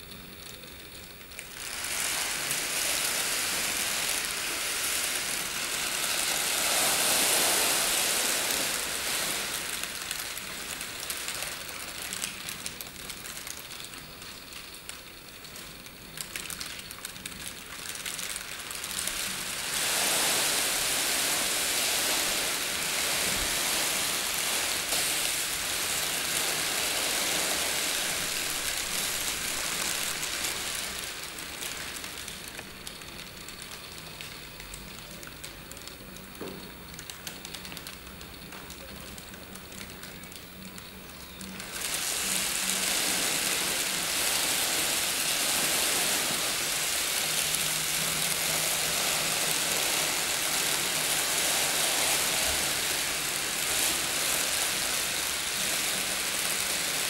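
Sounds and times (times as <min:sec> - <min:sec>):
plastic sheeting crinkling: 0:01.2 - 0:57.0.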